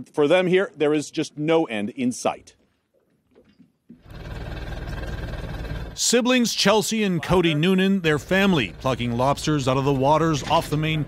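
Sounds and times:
boat engine droning: 0:04.0 - 0:11.0.

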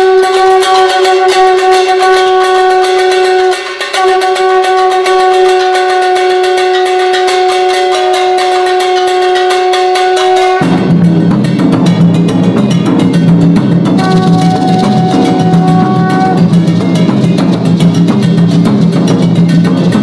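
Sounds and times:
conch shell horn: 0:00.0 - 0:11.2, 0:14.0 - 0:17.0
fast percussion roll: 0:00.0 - 0:20.0
low drums: 0:00.0 - 0:20.0.

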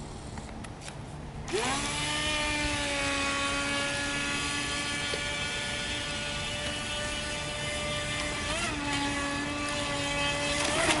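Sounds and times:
model boat motor whining: 0:01.5 - 0:11.0.

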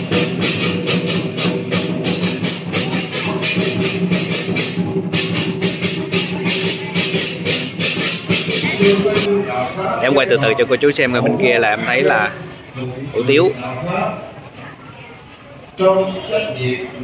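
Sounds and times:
drum and cymbals fast beat: 0:00.0 - 0:09.3.

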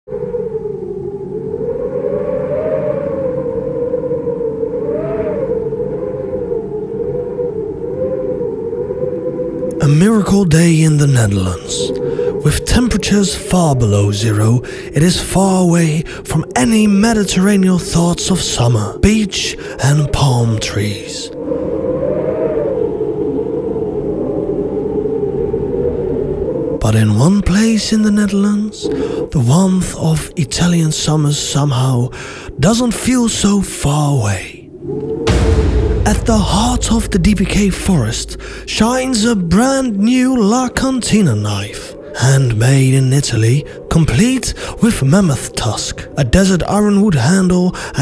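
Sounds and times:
wavering drone tone: 0:34.9 - 0:42.0
steady low rumble: 0:35.2 - 0:41.0.

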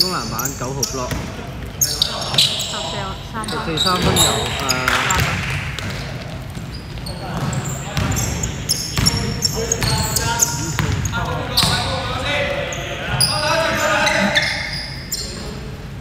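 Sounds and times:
sneakers squeaking: 0:00.0 - 0:16.0
players calling out: 0:00.1 - 0:15.5.

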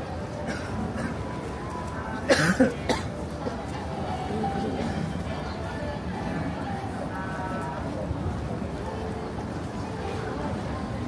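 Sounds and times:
street background noise: 0:00.0 - 0:11.0
person coughing: 0:02.3 - 0:03.1.

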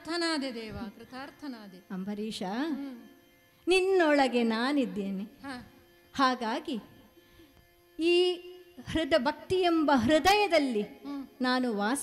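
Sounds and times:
faint steady drone: 0:00.0 - 0:12.0.

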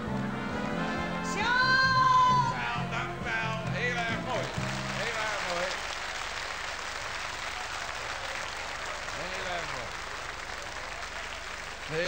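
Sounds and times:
audience applauding: 0:04.0 - 0:12.0.

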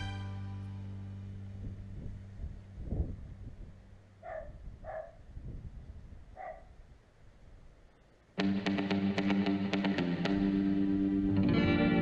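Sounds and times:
background music: 0:00.0 - 0:01.6, 0:08.4 - 0:12.0
dog barking: 0:04.2 - 0:05.2, 0:06.3 - 0:06.8.

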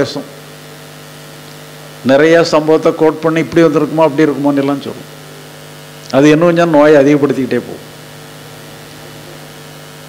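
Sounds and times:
electrical mains hum: 0:00.0 - 0:10.0
person talking: 0:02.0 - 0:05.1, 0:06.1 - 0:07.9.

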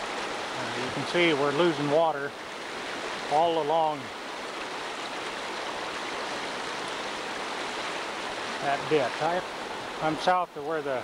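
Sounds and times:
floodwater rushing: 0:00.0 - 0:11.0.

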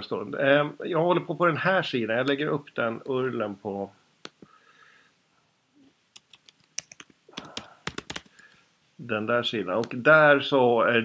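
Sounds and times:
computer keyboard typing: 0:06.2 - 0:08.6.

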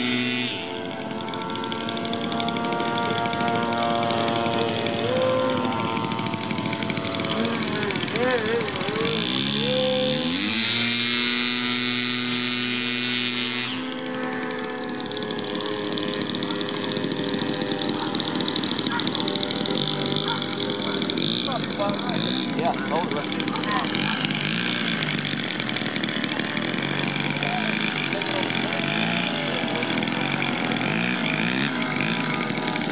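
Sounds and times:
model plane motor whine: 0:00.0 - 0:32.9.

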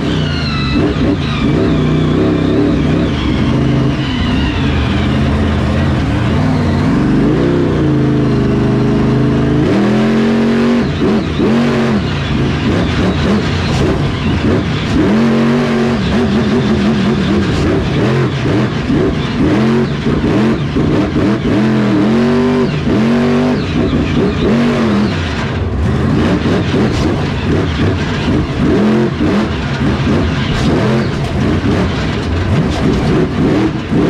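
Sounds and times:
truck engine revving: 0:00.0 - 0:34.0.

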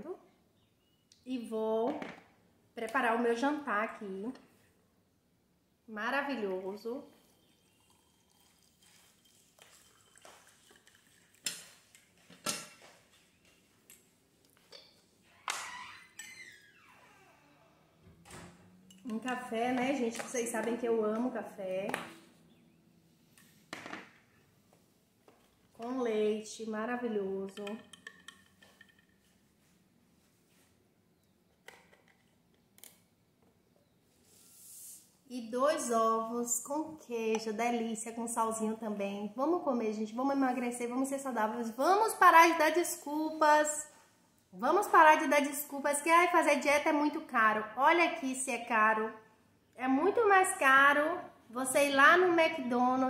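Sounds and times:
hot water pouring into mug: 0:07.1 - 0:12.0
soft hiss: 0:34.0 - 0:35.3.

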